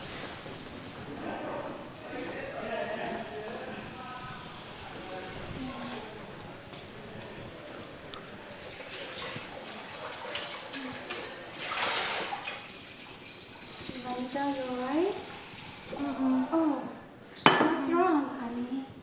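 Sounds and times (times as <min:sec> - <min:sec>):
faint low voices: 0:00.7 - 0:12.5
water trickling from tap: 0:08.2 - 0:16.4
rush of water: 0:08.5 - 0:16.2
dish clinking: 0:17.4 - 0:17.9.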